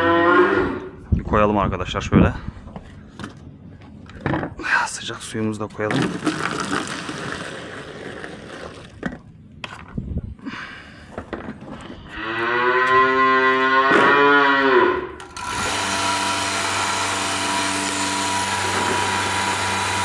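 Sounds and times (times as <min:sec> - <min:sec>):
cow mooing: 0:00.0 - 0:01.0, 0:12.1 - 0:15.2
water pouring into plastic bucket: 0:05.9 - 0:09.0
milking machine vacuum pump hum: 0:15.4 - 0:20.0.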